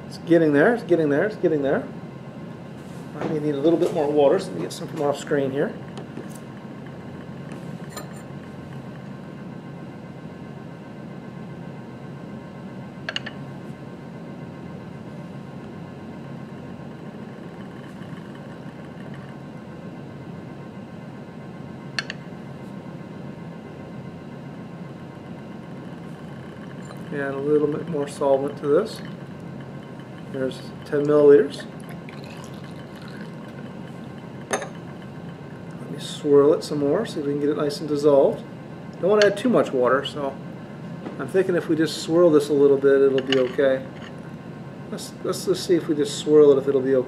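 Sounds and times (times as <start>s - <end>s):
steady low hum: 0.0s - 47.0s
water heating near the boil: 2.1s - 47.0s
glass beaker clinking: 25.9s - 35.5s.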